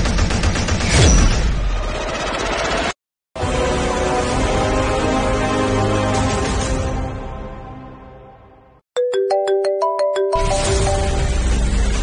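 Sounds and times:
background score music: 3.4s - 12.0s
rising run of chime notes: 9.0s - 11.5s.

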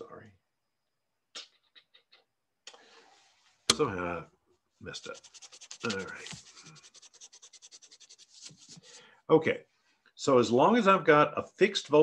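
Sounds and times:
eraser rubbing on paper: 4.9s - 9.0s.

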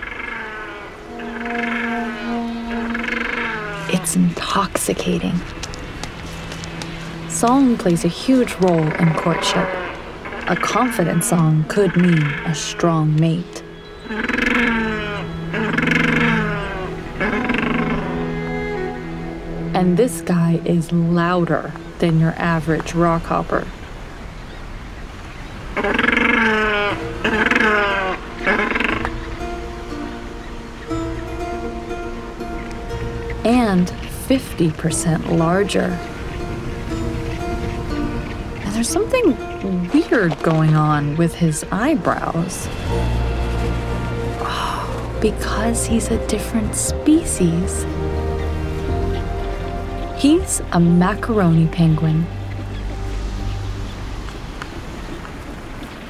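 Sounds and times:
penguin calling: 0.0s - 23.8s, 25.8s - 29.7s, 32.5s - 53.0s.

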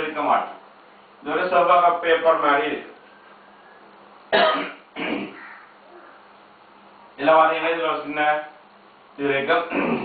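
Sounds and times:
faint room hum: 0.0s - 10.0s
man clearing his throat: 4.4s - 5.4s, 9.7s - 10.0s.

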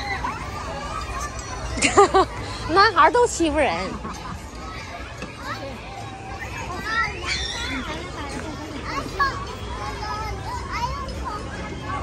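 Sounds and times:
children calling and chattering: 0.0s - 12.0s
crowd hum outdoors: 0.0s - 12.0s.

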